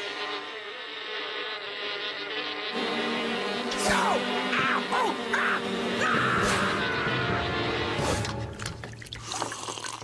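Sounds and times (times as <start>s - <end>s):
hornets buzzing: 0.0s - 8.6s.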